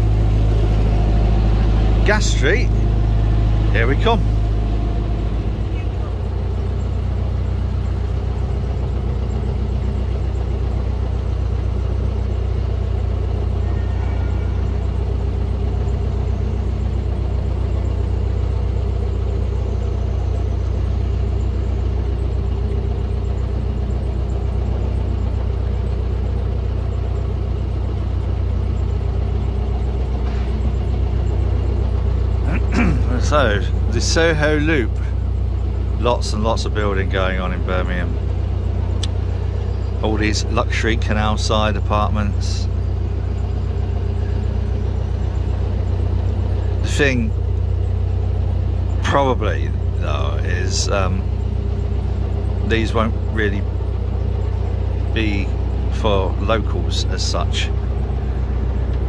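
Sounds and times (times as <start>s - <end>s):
diesel boat engine running: 0.0s - 59.0s.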